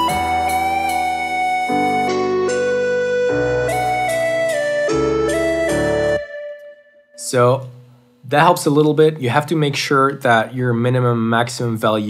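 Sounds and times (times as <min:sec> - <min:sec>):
synthesizer melody with pitch bend: 0:00.0 - 0:07.2.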